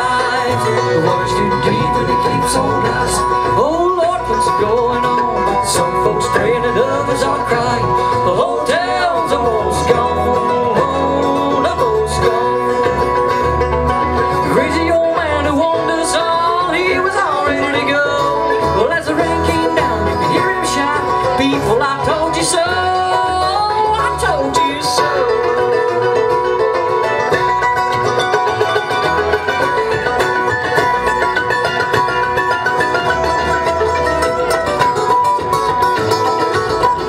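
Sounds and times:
acoustic guitar: 0.0s - 37.0s
mandolin: 0.0s - 37.0s.

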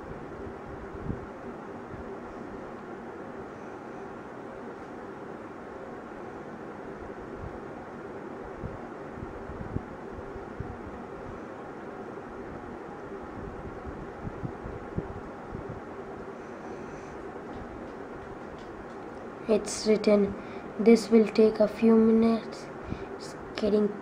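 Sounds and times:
room noise hum and hiss: 0.0s - 24.0s.

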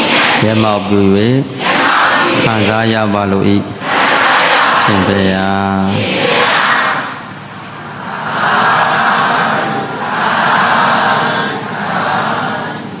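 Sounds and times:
congregation calling out together: 0.0s - 13.0s.

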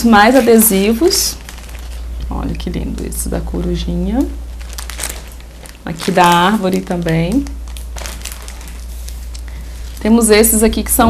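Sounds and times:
plastic packets crinkling: 0.0s - 10.8s
low electrical hum: 0.0s - 11.0s.

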